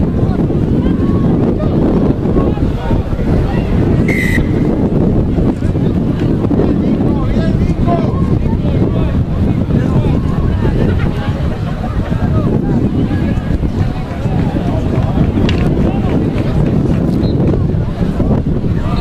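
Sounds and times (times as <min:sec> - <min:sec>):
wind buffeting microphone: 0:00.0 - 0:19.0
referee's whistle blast: 0:04.0 - 0:04.7.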